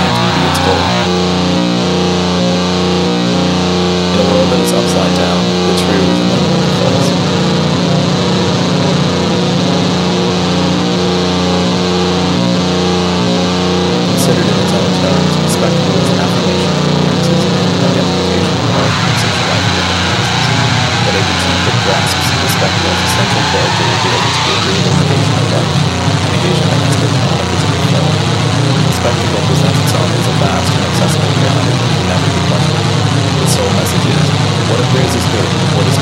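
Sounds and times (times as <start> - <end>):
voices: 0.0 - 2.6, 4.1 - 10.4, 14.0 - 36.0
low drone: 0.0 - 36.0.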